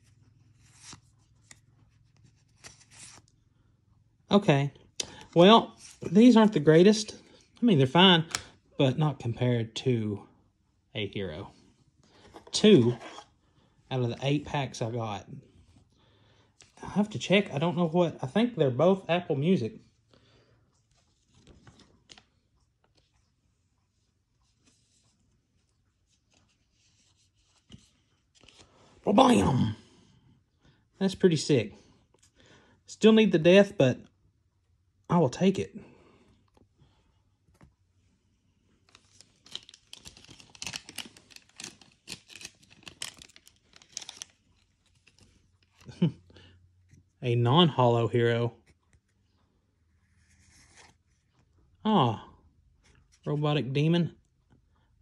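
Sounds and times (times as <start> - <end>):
trading cards rustling: 0.0 - 3.4, 24.5 - 28.9, 38.8 - 46.1.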